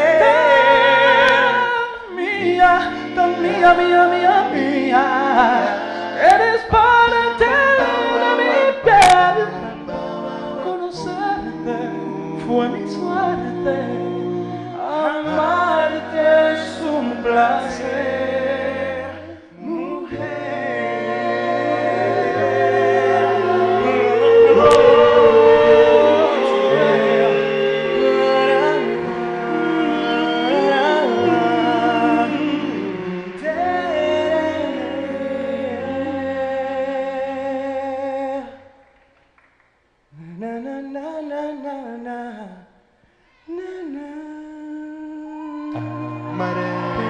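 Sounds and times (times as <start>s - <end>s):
male a cappella group harmony: 0.0s - 39.0s, 40.1s - 42.8s, 43.4s - 47.0s.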